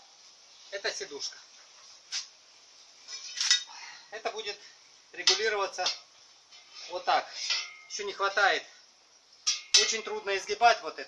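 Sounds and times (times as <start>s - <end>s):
steel strip clanking on metal frame: 3.1s - 3.7s, 5.2s - 8.5s, 9.4s - 10.3s.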